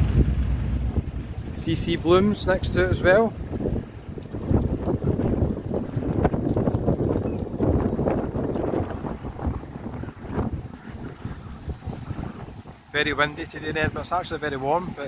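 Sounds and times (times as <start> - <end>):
street traffic: 0.0 - 15.0
wind buffeting microphone: 0.0 - 15.0.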